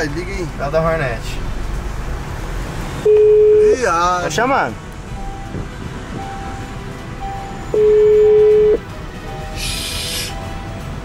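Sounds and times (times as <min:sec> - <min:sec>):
telephone ringback tone: 0:03.1 - 0:03.6, 0:07.7 - 0:08.8
low car cabin rumble: 0:04.4 - 0:09.2
short hiss: 0:09.6 - 0:10.4.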